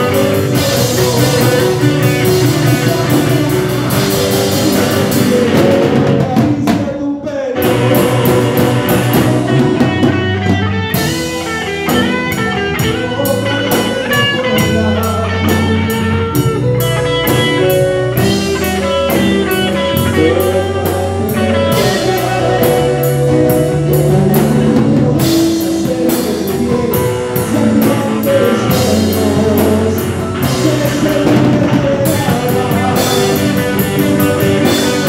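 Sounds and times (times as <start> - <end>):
sustained keyboard notes: 0.0 - 6.4
bass notes: 0.0 - 6.7, 7.5 - 35.0
drum kit beat: 0.0 - 35.0
electric guitar: 0.0 - 35.0.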